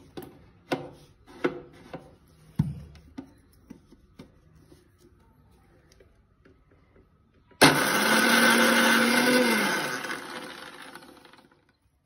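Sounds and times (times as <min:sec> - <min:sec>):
electric mixer grinder running: 0:07.6 - 0:11.7.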